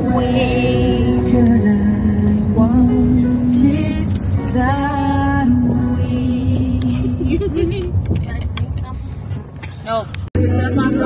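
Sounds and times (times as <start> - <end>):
van engine and road rumble: 0.0 - 11.0
people talking: 9.8 - 11.0.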